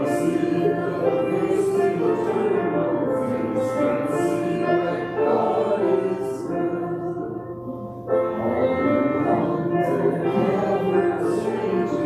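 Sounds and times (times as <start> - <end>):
voices singing a hymn: 0.0 - 12.0.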